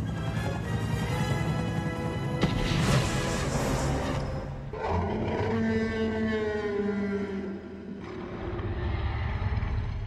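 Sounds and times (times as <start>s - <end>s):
dinosaur roar: 4.7s - 10.0s.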